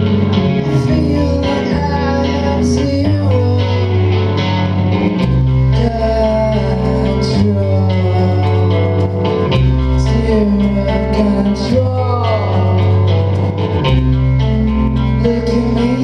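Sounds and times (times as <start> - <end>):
drums: 0.0 - 16.0
electric guitar lines: 0.0 - 16.0
sustained low bass line: 0.0 - 16.0.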